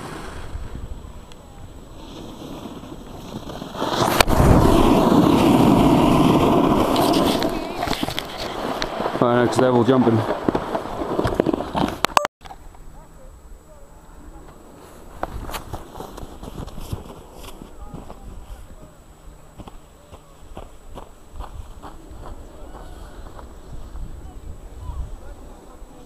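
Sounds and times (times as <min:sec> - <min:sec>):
footsteps crunching in snow: 0:14.8 - 0:18.8, 0:19.5 - 0:24.0.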